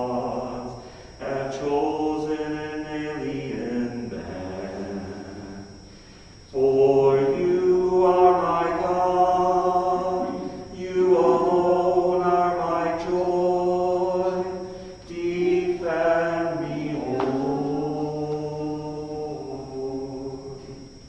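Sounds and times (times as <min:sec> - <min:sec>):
liturgical chant singing: 0:00.0 - 0:21.0.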